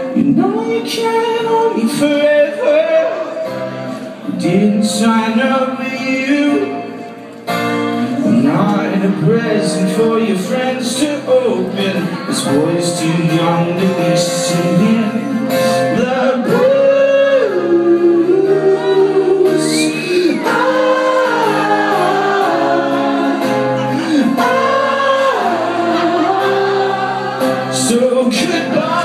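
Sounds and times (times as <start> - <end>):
man singing: 0.0 - 7.1, 7.9 - 29.0.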